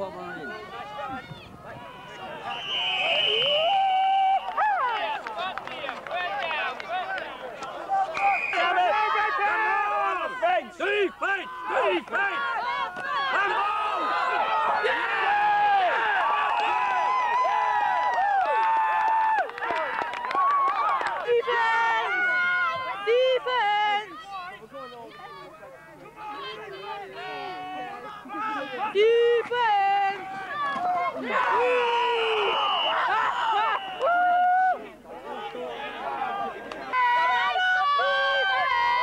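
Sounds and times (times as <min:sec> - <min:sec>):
crowd shouting and calling out: 0:00.0 - 0:39.0.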